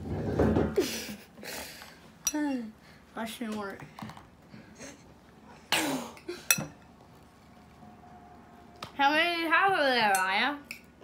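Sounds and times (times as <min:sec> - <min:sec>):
metal spoon clinking ceramic bowl: 0:10.1 - 0:10.9.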